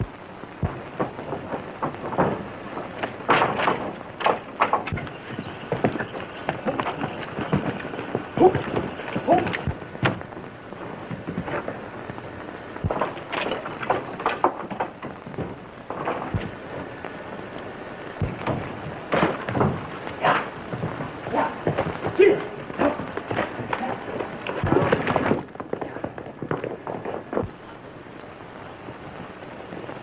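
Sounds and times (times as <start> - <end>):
sharp bangs and thuds: 0.0 - 17.2, 18.2 - 27.6
film soundtrack hiss: 0.0 - 30.0.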